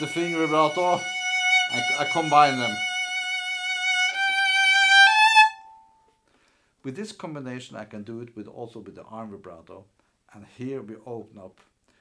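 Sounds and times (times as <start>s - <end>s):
violin sustained notes with vibrato: 0.0s - 5.8s.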